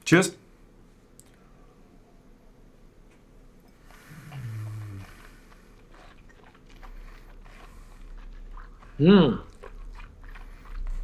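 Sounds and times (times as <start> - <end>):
breathing and mouth sounds: 3.7 - 11.0
man humming mm: 4.0 - 5.3.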